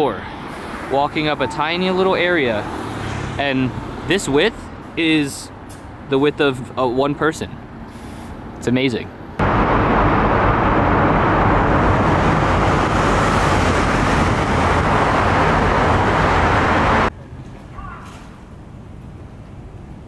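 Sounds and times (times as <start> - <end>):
quiet street background: 0.0 - 9.5, 17.1 - 20.0
tunnel traffic roar: 0.0 - 20.0.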